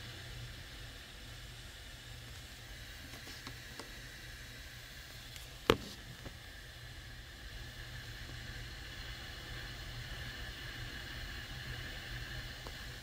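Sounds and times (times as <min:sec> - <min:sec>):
steady whirring hiss: 0:00.0 - 0:13.0.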